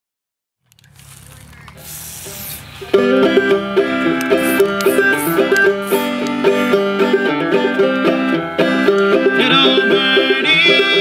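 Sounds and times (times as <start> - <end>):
faint outdoor rumble: 0.6 - 8.6
aerosol spray can hissing: 1.0 - 7.1.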